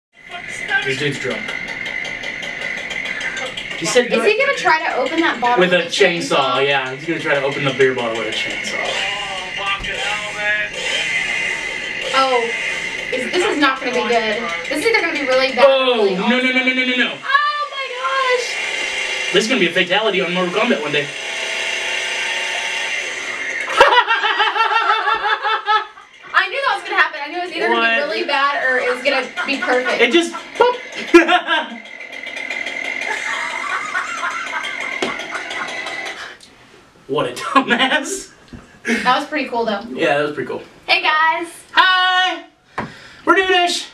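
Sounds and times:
chainsaw running through phone speaker: 0:00.2 - 0:36.4
voices: 0:00.2 - 0:36.5, 0:37.1 - 0:43.9.

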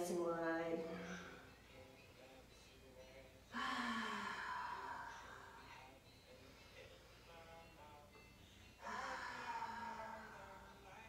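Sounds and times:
person breathing deeply: 0:03.5 - 0:07.0.

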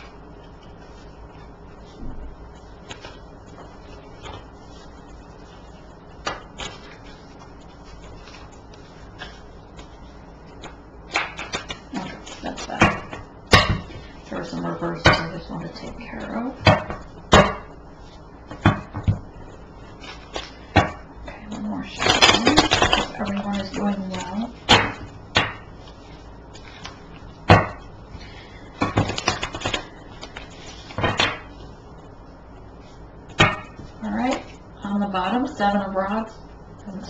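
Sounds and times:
cards being shuffled: 0:00.0 - 0:12.8, 0:18.0 - 0:20.7, 0:21.8 - 0:27.4, 0:28.8 - 0:31.6.

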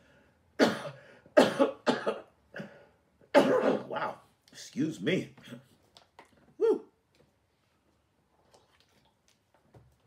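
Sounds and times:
man coughing into cloth: 0:00.6 - 0:02.7, 0:03.3 - 0:04.1.

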